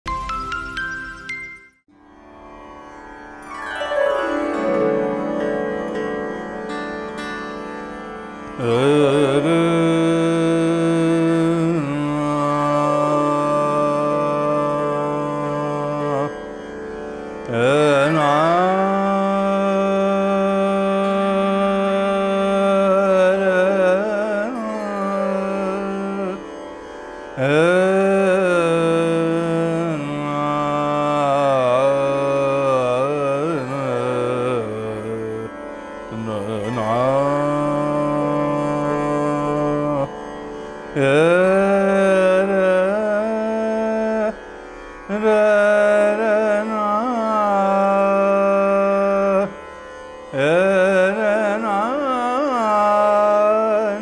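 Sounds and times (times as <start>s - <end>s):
swarmandal strings glissando: 3.2s - 9.4s
man singing classical vocal: 8.4s - 16.7s, 17.4s - 26.6s, 27.3s - 54.0s.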